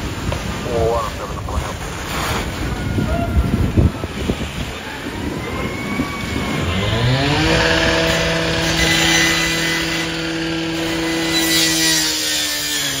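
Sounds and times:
engine revving up: 0:06.4 - 0:12.7.

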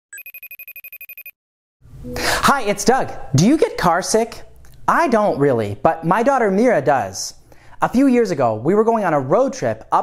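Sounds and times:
electronic phone ring: 0:00.1 - 0:01.4.

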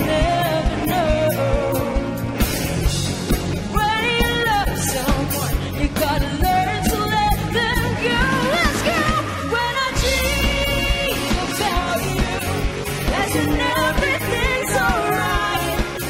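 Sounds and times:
woman singing pop ballad: 0:00.0 - 0:02.5, 0:03.6 - 0:16.0
electric guitar: 0:00.0 - 0:16.0.

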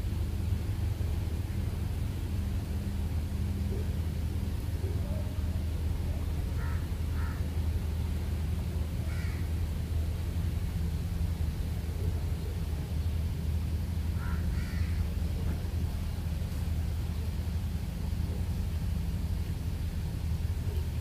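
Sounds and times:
steady low rumble: 0:00.0 - 0:21.0.

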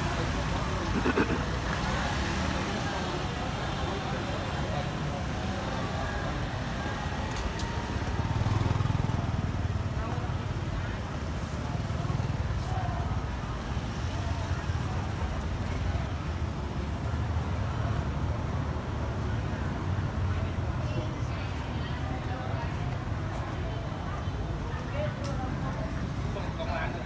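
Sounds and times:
vehicle engines passing: 0:00.0 - 0:27.0
voices in background: 0:00.0 - 0:27.0.

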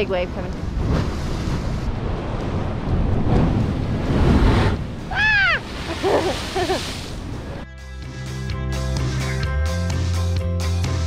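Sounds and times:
wind buffeting microphone: 0:00.0 - 0:07.6
sea waves breaking on rocks: 0:00.6 - 0:07.6
high wavering cries: 0:05.1 - 0:06.8.

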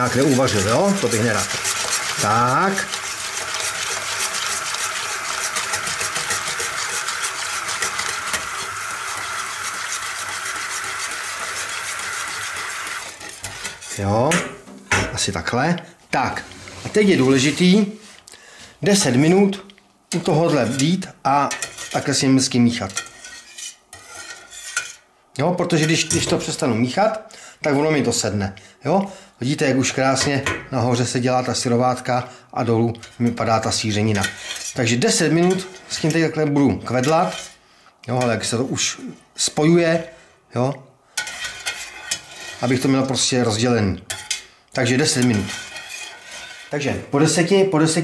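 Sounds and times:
tap water running into pot: 0:00.0 - 0:13.6
wire whisk stirring: 0:00.0 - 0:14.1, 0:20.1 - 0:22.2, 0:22.8 - 0:25.0, 0:33.0 - 0:37.6, 0:41.2 - 0:46.9.

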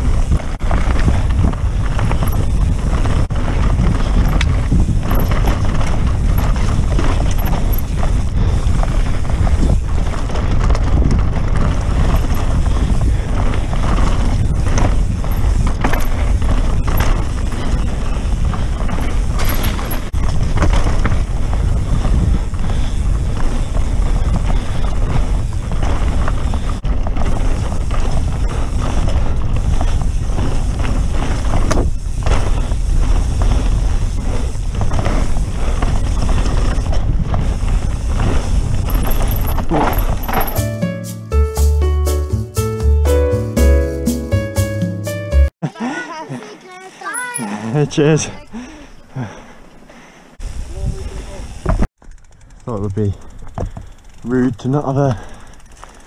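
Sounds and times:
wind rushing on microphone: 0:00.0 - 0:40.4, 0:50.4 - 0:51.9
bike chain and frame rattling: 0:00.0 - 0:40.8, 0:46.6 - 0:56.0
bike tyre noise on dirt: 0:00.0 - 0:40.8, 0:45.6 - 0:56.0.

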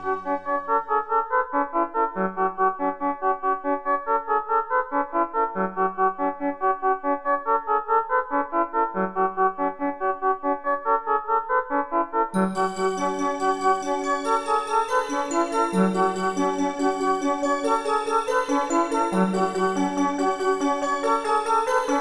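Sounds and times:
synthesizer arpeggio: 0:00.0 - 0:00.7, 0:12.4 - 0:22.0.

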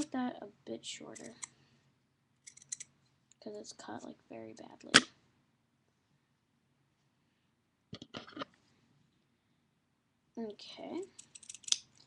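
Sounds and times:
scissors clicking: 0:11.2 - 0:11.8.

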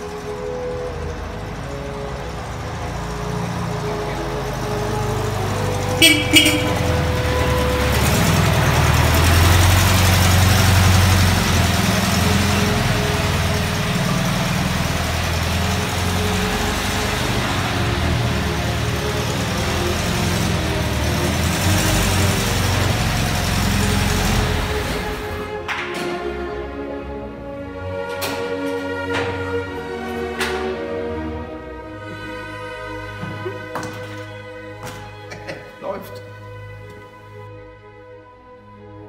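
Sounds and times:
engine running at low revs: 0:00.0 - 0:34.4.

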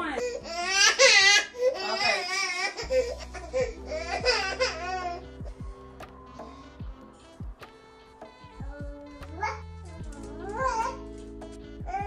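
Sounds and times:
baby crying and squealing: 0:00.2 - 0:05.6, 0:10.5 - 0:11.0
music with deep bass: 0:02.8 - 0:12.0.

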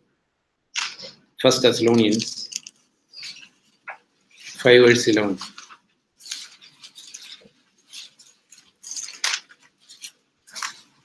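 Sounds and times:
paper pages rustling: 0:00.8 - 0:11.0.

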